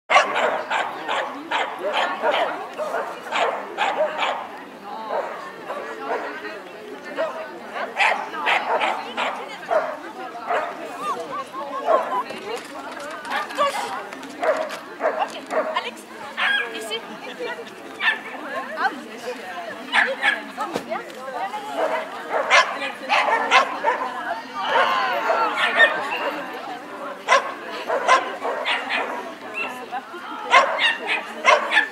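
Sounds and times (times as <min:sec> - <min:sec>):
dog barking: 0:00.1 - 0:04.5, 0:07.2 - 0:10.8, 0:21.8 - 0:24.1, 0:27.3 - 0:29.2, 0:30.5 - 0:31.9
people's voices: 0:00.1 - 0:31.9.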